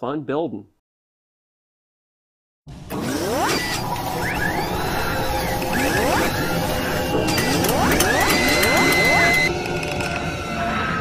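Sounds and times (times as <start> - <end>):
mechanical whirring logo sting: 2.9 - 9.5.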